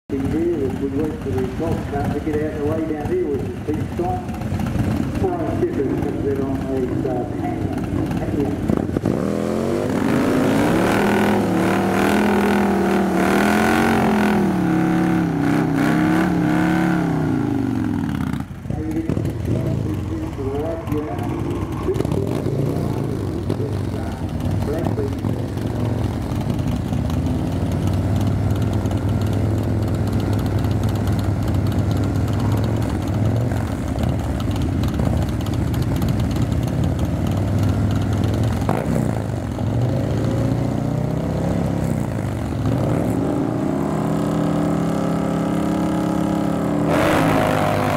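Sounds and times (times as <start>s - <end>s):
motorcycle engine revving: 0.1s - 47.9s.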